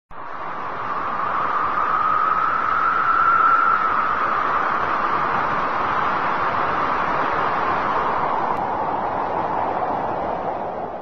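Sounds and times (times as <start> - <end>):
steady rushing hiss: 0.2 - 11.0.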